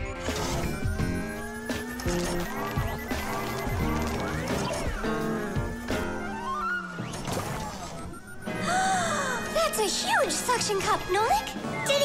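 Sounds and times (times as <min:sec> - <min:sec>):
background music with quick beat: 0:00.3 - 0:06.4.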